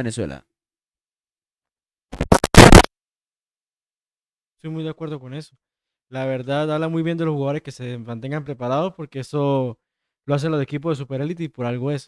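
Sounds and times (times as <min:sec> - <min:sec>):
scratchy scraping noise: 0:02.2 - 0:02.9.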